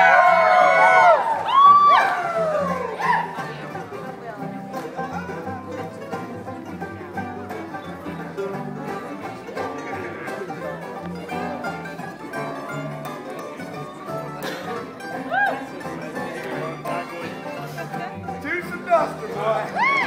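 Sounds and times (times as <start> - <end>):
bluegrass string band playing: 0.0 - 20.0
crowd voices: 0.0 - 20.0.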